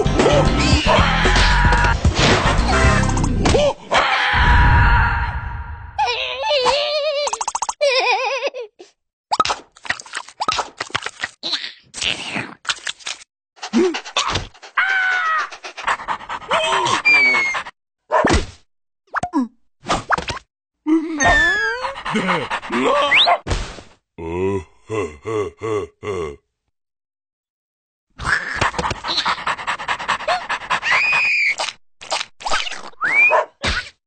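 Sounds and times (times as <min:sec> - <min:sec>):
cartoon dog panting and sniffing: 0:13.6 - 0:17.8, 0:21.1 - 0:23.4, 0:28.5 - 0:31.8.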